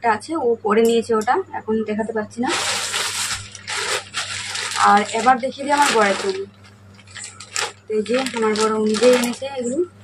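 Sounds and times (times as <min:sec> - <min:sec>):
woman's voice: 0:00.0 - 0:02.9, 0:04.7 - 0:06.6, 0:07.9 - 0:10.0
plastic bag rustling: 0:02.4 - 0:09.9.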